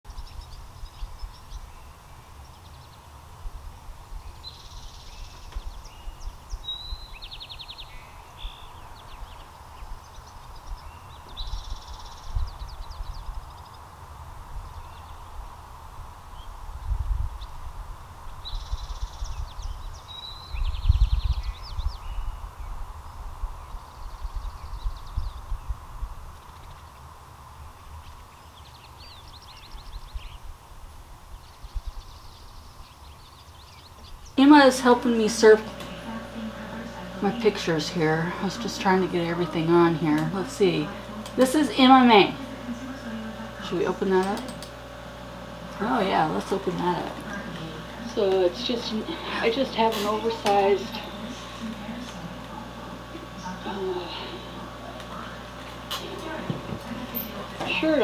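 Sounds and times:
wind rumble on microphone: 0.1 - 34.4
songbirds singing: 0.1 - 58.0.

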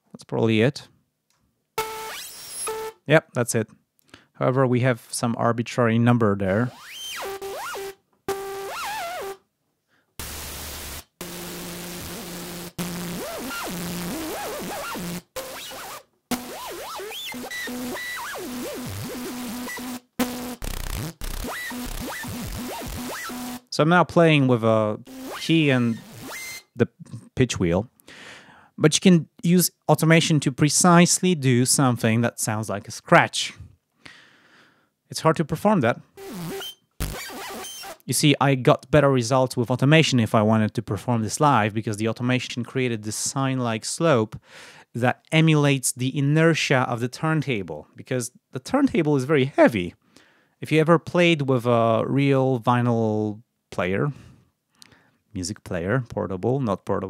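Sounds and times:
synthesizer hissing notes: 6.6 - 9.4, 10.2 - 23.7, 25.0 - 26.6, 36.2 - 38.0.

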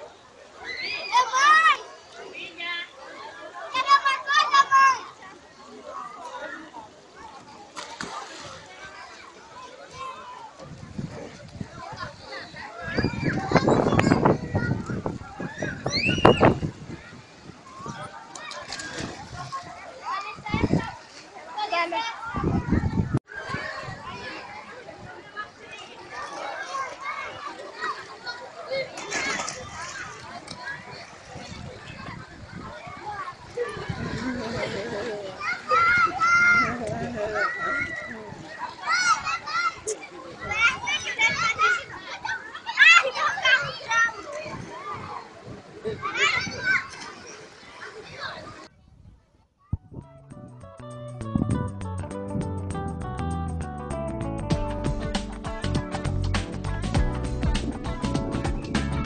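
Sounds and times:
children shouting in a pool: 0.0 - 48.8.

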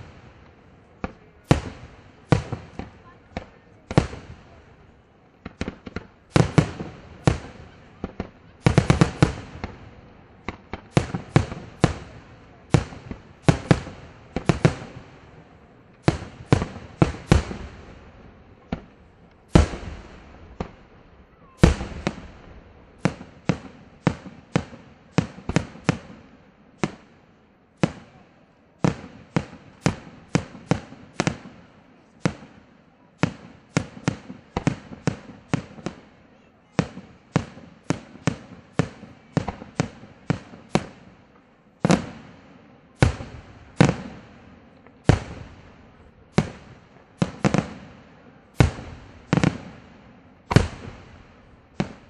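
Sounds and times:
firework shells booming: 5.4 - 26.2, 36.8 - 42.4, 43.0 - 52.0.

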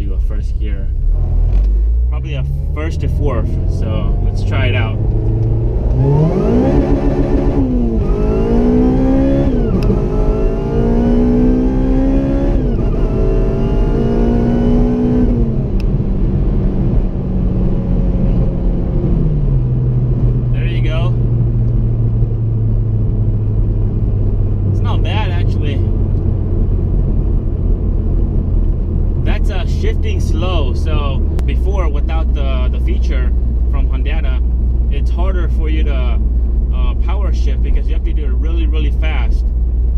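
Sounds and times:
car engine revving through gears: 1.0 - 38.0.

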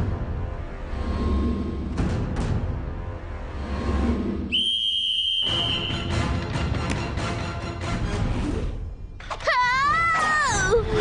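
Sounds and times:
shrill sports whistle blast: 4.5 - 6.2.

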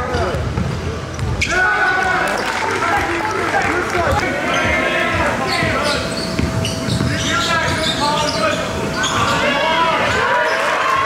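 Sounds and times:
sneakers squeaking: 0.0 - 3.2, 3.8 - 11.0
voices of players and spectators: 0.0 - 11.0
ball dribbling on hardwood court: 5.1 - 7.8.

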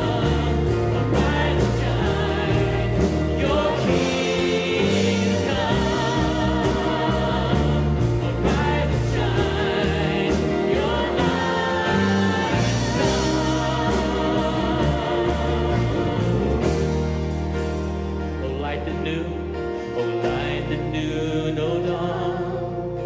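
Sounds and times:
worship band playing a slow hymn: 0.0 - 23.0
man singing lead vocal: 18.4 - 23.0.

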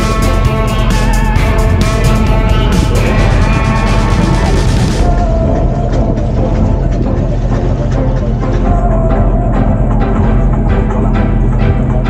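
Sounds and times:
watercraft engine drone: 0.0 - 12.0.

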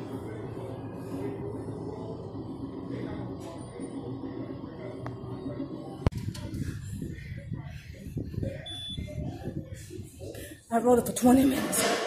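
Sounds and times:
murmur of voices: 0.0 - 12.0.

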